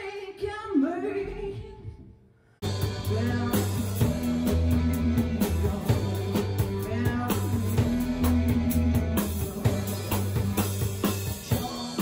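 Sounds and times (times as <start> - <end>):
rock band playing: 2.6 - 12.0.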